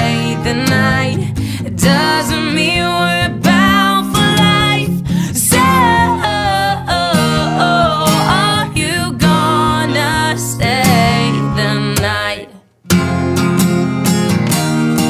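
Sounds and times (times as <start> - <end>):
woman singing pop song: 0.0 - 12.7
strummed acoustic guitar: 0.0 - 15.0.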